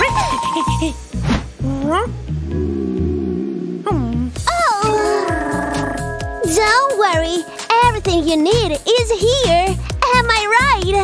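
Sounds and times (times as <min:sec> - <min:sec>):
children's background music: 0:00.0 - 0:03.3, 0:03.9 - 0:11.0.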